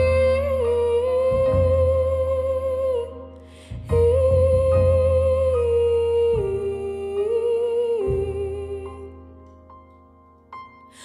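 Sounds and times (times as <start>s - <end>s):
woman singing long notes: 0.0s - 9.2s
low instrumental accompaniment: 0.0s - 11.0s.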